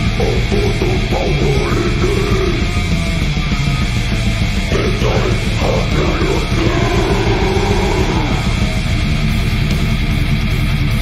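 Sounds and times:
distorted electric guitars: 0.0s - 11.0s
fast dense drumming: 0.0s - 11.0s.

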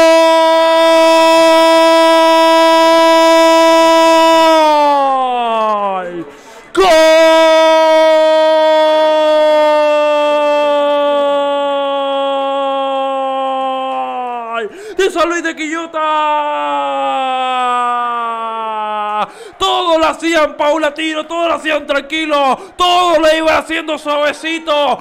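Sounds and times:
commentator shouting goal cry: 0.0s - 25.0s.

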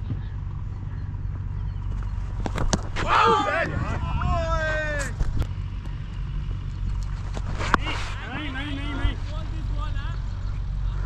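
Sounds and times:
cricket bat hitting ball: 2.4s - 3.4s
wind on microphone: 3.0s - 5.6s.

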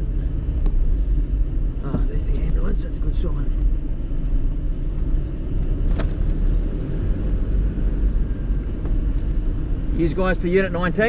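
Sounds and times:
car road noise inside cabin: 0.0s - 11.0s.

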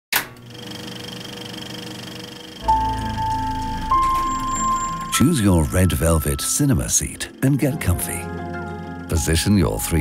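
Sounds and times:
film projector whirring: 0.2s - 3.9s.

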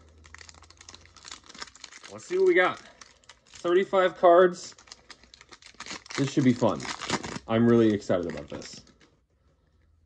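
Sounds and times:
foil wrapper crinkling: 0.0s - 3.9s, 4.7s - 9.1s.

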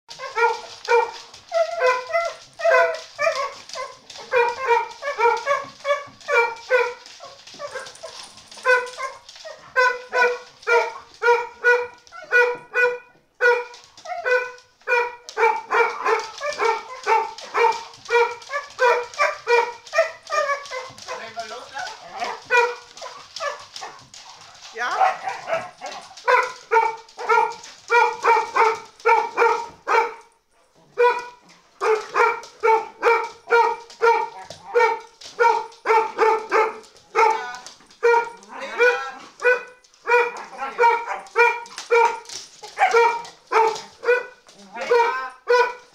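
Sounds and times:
dog barking high-pitched: 0.1s - 45.9s.

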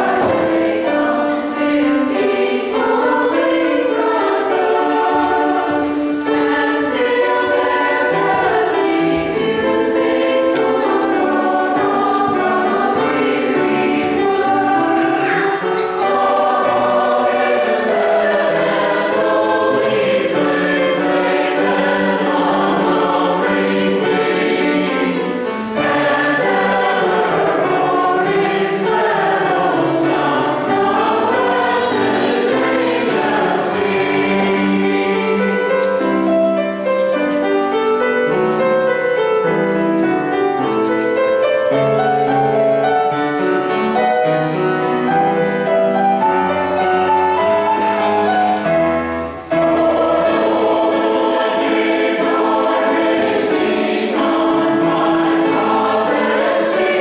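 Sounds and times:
choir singing in parts: 0.0s - 57.0s.

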